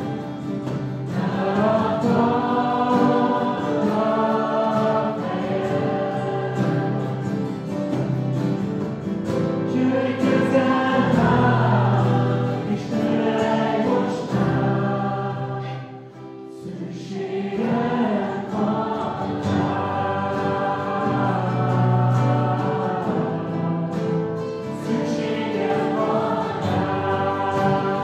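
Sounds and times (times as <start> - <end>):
acoustic guitars: 0.0 - 28.0
group singing worship song: 0.0 - 28.0.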